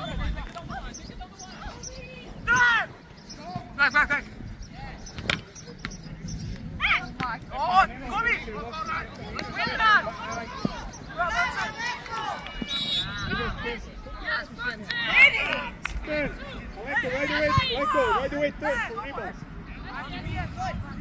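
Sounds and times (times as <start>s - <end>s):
voices calling and shouting: 0.0s - 21.0s.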